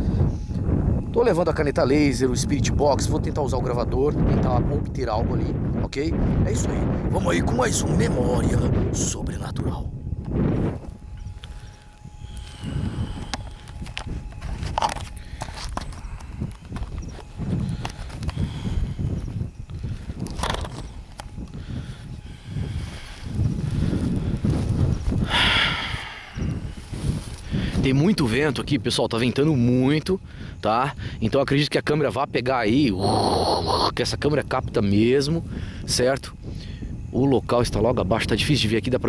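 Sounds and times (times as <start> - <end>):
wind buffeting microphone: 0.0 - 39.0
camera handling knocks: 20.3 - 20.8
footsteps through grass: 22.8 - 25.2, 26.6 - 27.9.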